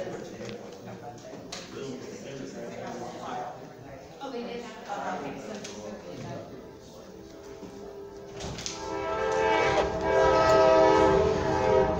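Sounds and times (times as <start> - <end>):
train horn chord: 7.7 - 11.9.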